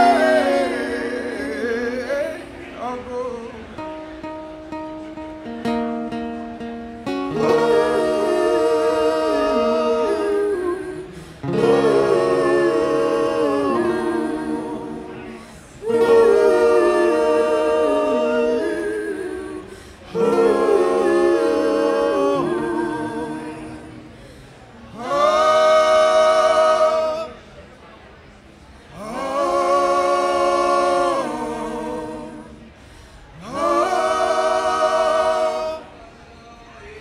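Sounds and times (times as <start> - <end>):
voices singing wordless harmonies: 0.0 - 4.0, 7.2 - 27.7, 28.9 - 36.9
acoustic guitar: 0.0 - 36.4.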